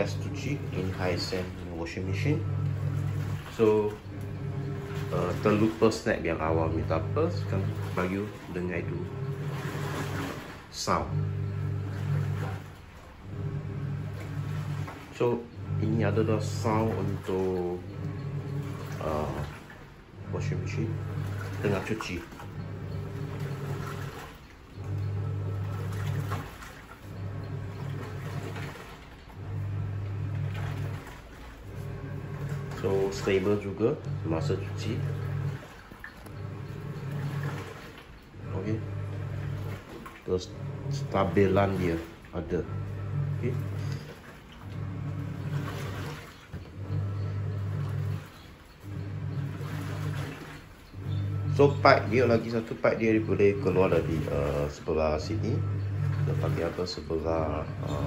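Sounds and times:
washing machine motor humming: 0.0s - 58.0s
water sloshing in tub: 0.0s - 58.0s.

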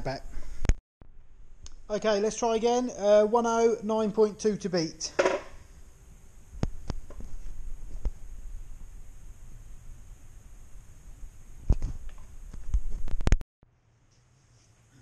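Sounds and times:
low steady hum: 0.0s - 13.3s.

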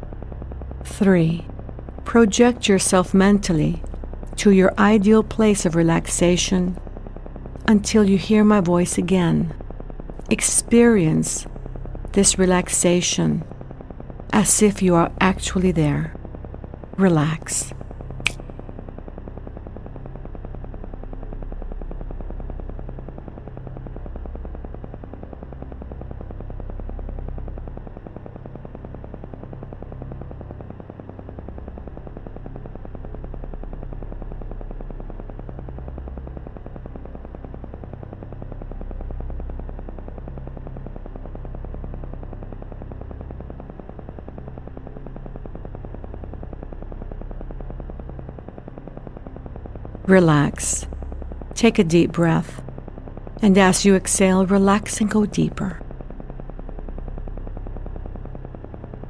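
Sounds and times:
low drone: 0.0s - 59.0s
rapid electronic pulsing: 0.0s - 59.0s.

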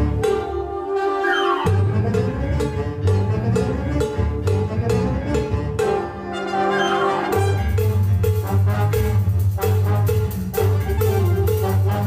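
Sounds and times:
concert band playing cuban-style music: 0.0s - 12.0s.

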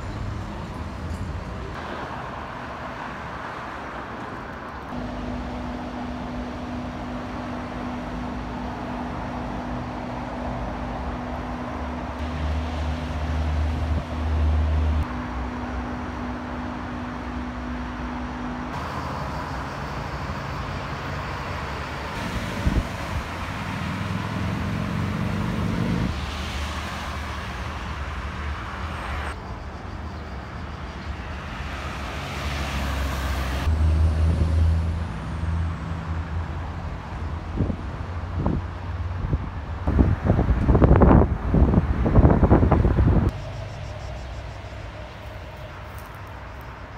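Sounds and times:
road traffic engines passing: 0.0s - 46.9s.

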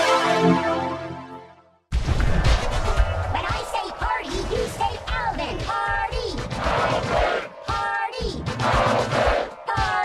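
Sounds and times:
crashing noise: 1.9s - 3.5s
pitch-shifted shouted voices: 2.5s - 10.0s.

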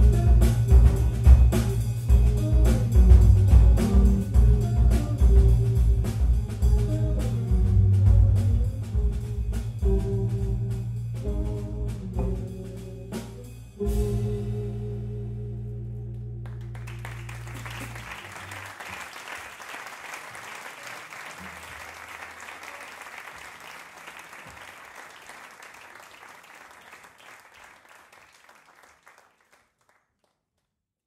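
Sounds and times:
audience applause: 16.4s - 30.3s.

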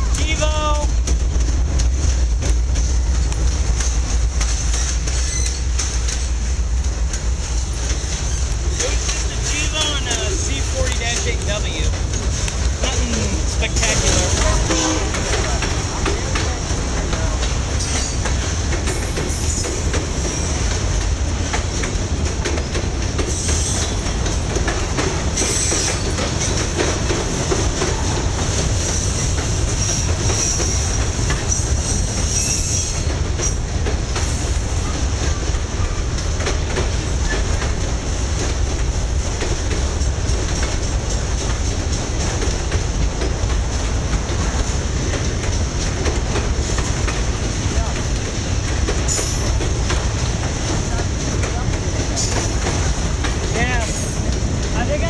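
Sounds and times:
freight train wheels rumbling: 0.0s - 55.0s
wheels clacking over rail joints: 0.0s - 55.0s
high wheel squeals: 4.7s - 5.7s, 31.5s - 33.6s.

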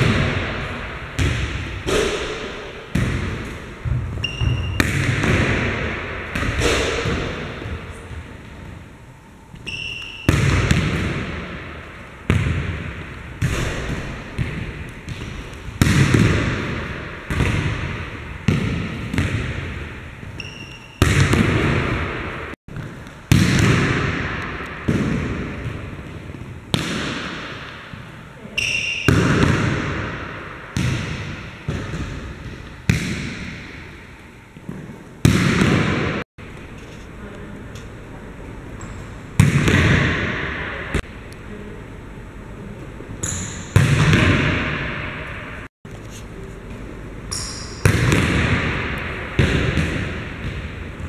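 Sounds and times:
echoing gym room tone: 0.0s - 51.0s
sneaker squeaking on hardwood: 4.0s - 4.9s
brief high squeak: 4.2s - 4.8s, 9.6s - 10.3s.

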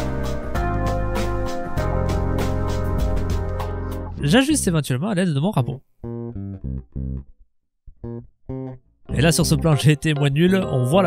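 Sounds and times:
bass notes: 0.0s - 4.8s, 5.6s - 11.0s
plucked guitar notes: 6.0s - 7.3s, 7.9s - 11.0s.

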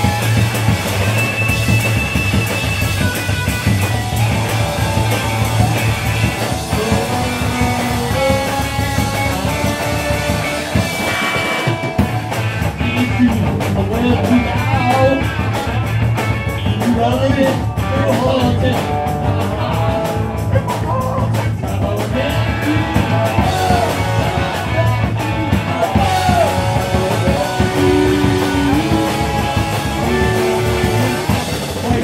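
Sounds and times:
bass guitar: 0.0s - 32.0s
drum kit: 0.0s - 32.0s
electric guitar: 0.0s - 32.0s.

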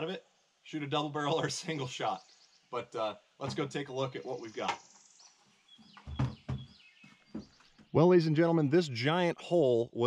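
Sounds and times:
birds chirping: 0.0s - 10.0s.

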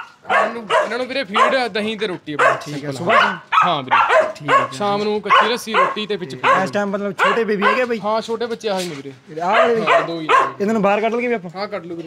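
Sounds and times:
people talking: 0.3s - 12.0s
dogs vocalizing: 2.4s - 7.9s, 9.5s - 10.6s.

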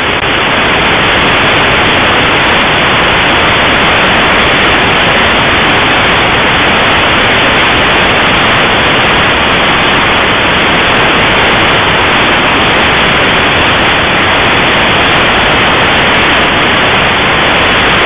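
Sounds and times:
radio static hiss: 0.0s - 18.0s.

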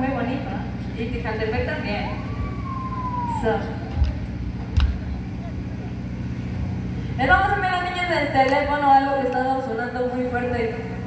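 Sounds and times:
sound system hum: 0.0s - 11.0s.

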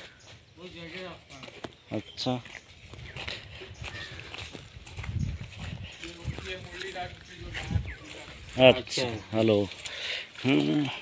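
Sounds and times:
footsteps on dry leaves: 0.0s - 11.0s.

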